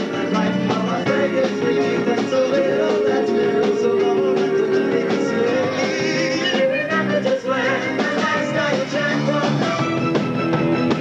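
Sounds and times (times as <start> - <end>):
rock band playing live: 0.0 - 11.0
wavering high melodic line: 1.3 - 7.2.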